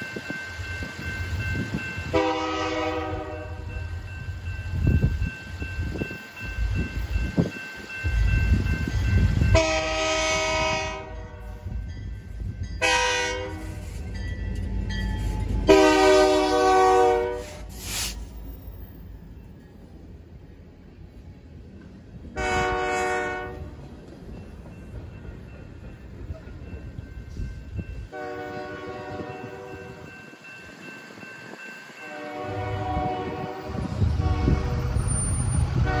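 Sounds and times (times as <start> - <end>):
locomotive air horn blasts: 2.1 - 3.7, 9.5 - 11.8, 12.8 - 13.9, 15.6 - 18.0, 22.4 - 23.7, 28.1 - 30.0, 32.1 - 36.0
low locomotive rumble: 32.2 - 36.0.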